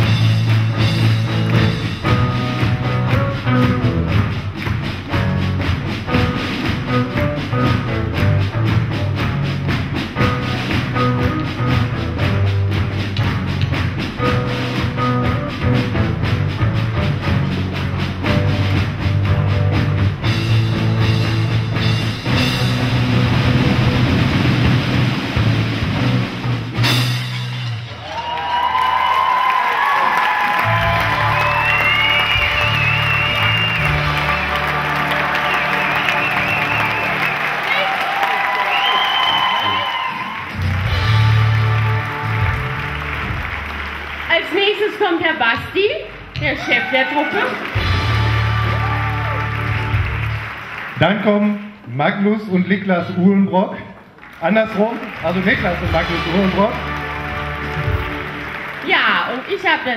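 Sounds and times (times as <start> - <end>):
applause and cheering: 0.0 - 15.9, 27.3 - 51.9, 53.7 - 59.9
snare and bass drums: 0.0 - 29.5, 30.3 - 44.3, 47.6 - 50.7, 55.0 - 59.8
music: 0.0 - 59.9.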